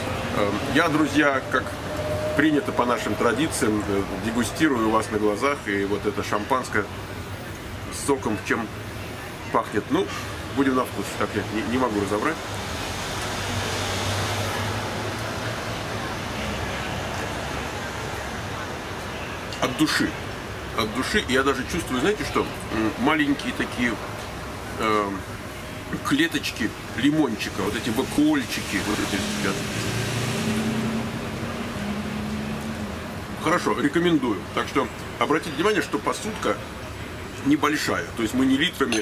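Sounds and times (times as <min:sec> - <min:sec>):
low traffic rumble: 0:00.0 - 0:39.0
street noise: 0:00.0 - 0:39.0
vehicle engine humming: 0:28.4 - 0:33.7.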